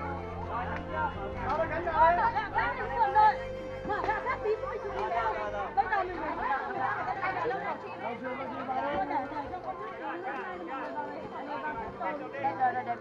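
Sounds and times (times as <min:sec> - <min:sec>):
faint background music: 0:00.0 - 0:13.0
people talking at once: 0:00.0 - 0:13.0.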